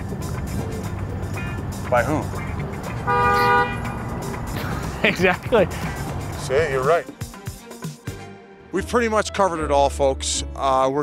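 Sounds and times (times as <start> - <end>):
car horn honking: 1.4 - 4.8.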